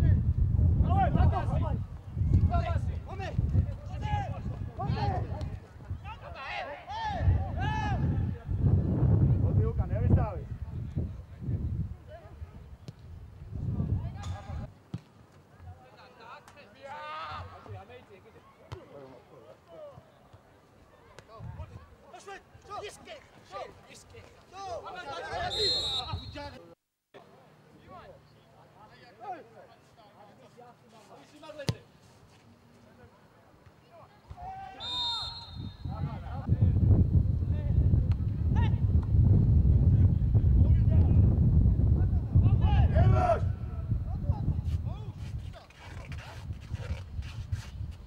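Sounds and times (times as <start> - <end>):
referee's whistle: 25.4 - 26.6, 34.8 - 36.2.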